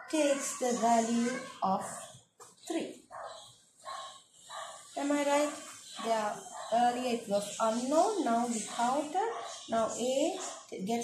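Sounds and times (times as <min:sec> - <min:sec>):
marker squeaking on whiteboard: 0:00.0 - 0:10.7.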